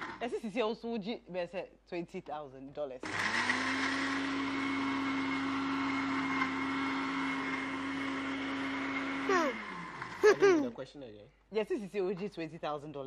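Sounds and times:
electric blender motor whirring: 0:03.0 - 0:10.6.

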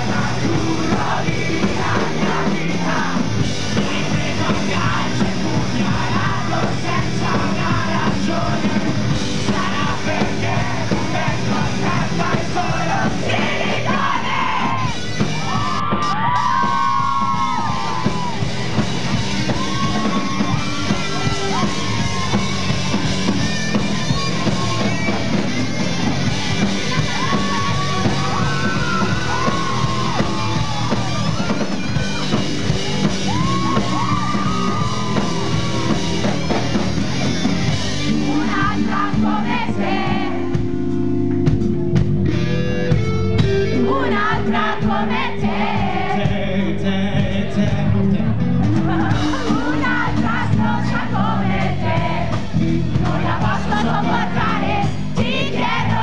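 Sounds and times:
shouted singing: 0:00.0 - 0:40.6, 0:43.7 - 0:56.0
crowd: 0:00.0 - 0:56.0
electric guitar chords: 0:00.0 - 0:56.0
live pop-punk band playing: 0:00.0 - 0:56.0.

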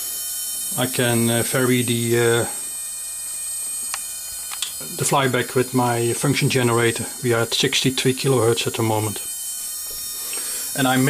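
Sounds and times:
spark gap hissing buzz: 0:00.0 - 0:07.5, 0:08.8 - 0:11.0
short clicks: 0:03.9 - 0:04.8.

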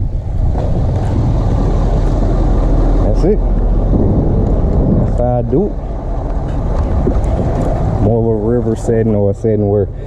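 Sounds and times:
diesel engine running: 0:00.0 - 0:10.0
wind buffeting microphone: 0:00.0 - 0:10.0.

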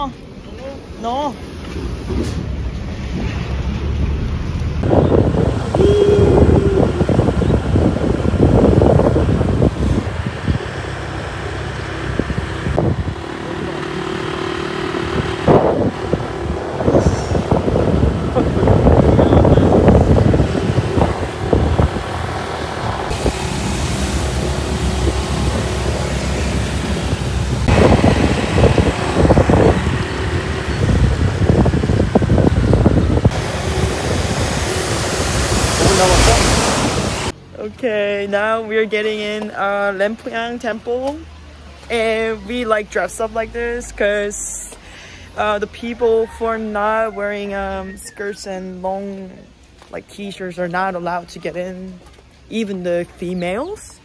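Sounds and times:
vehicles passing: 0:00.0 - 0:54.0.

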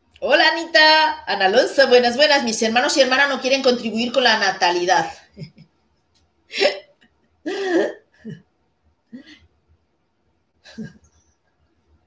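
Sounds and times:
woman chuckling: 0:05.2 - 0:05.8, 0:06.5 - 0:08.4, 0:10.6 - 0:11.2.

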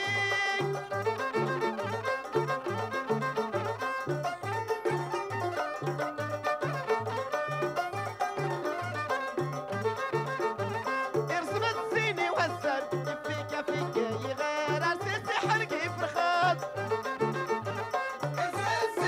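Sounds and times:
fiddle melody: 0:00.0 - 0:19.0
hand percussion: 0:00.0 - 0:19.0.

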